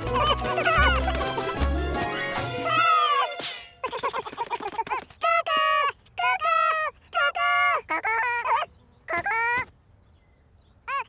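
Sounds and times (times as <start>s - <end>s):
cartoon voice high calls: 2.6s - 3.4s, 5.2s - 9.7s.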